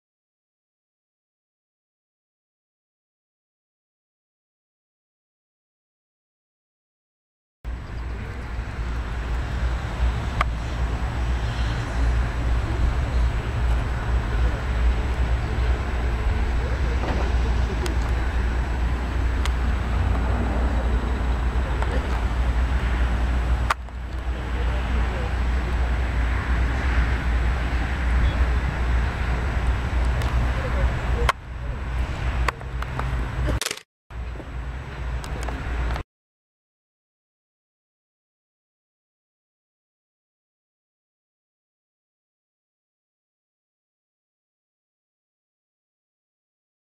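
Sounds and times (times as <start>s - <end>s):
loud low rumble: 7.7s - 32.4s.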